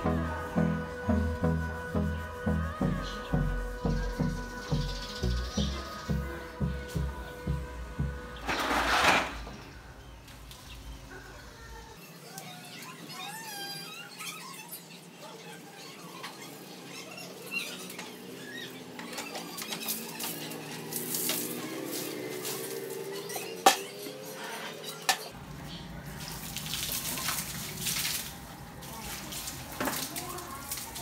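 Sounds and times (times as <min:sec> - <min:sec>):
water splashing and scrubbing: 0:19.6 - 0:25.3, 0:26.0 - 0:31.0.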